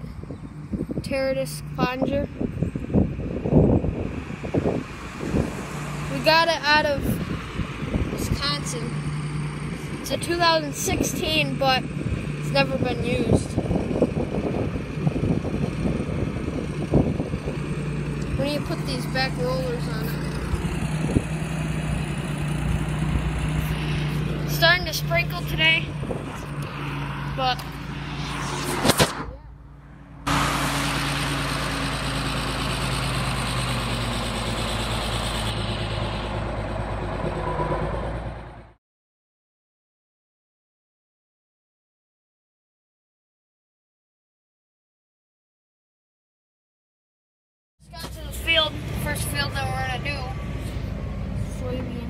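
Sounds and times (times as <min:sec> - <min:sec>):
tractor diesel engine running: 0:00.0 - 0:28.1, 0:29.4 - 0:38.8, 0:47.9 - 0:52.0
wind buffeting microphone: 0:00.0 - 0:29.4.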